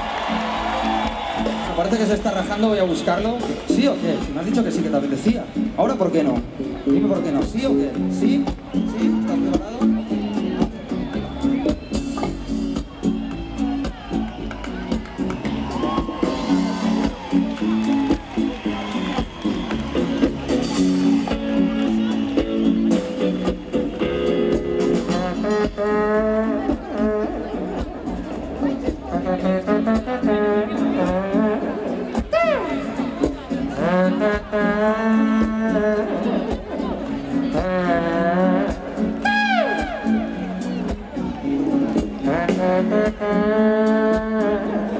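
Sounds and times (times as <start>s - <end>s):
live band backing: 0.0s - 44.9s
trumpet improvising: 24.8s - 27.8s, 29.0s - 33.2s, 37.5s - 40.7s, 42.2s - 44.9s.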